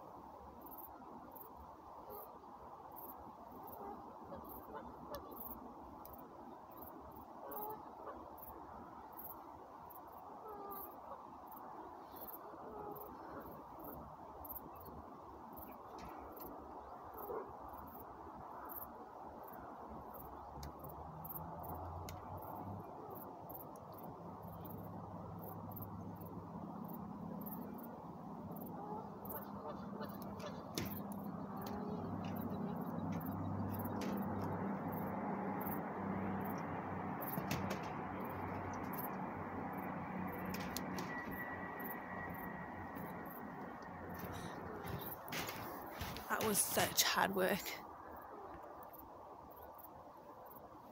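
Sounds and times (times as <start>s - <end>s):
insects chirping: 0.0s - 50.9s.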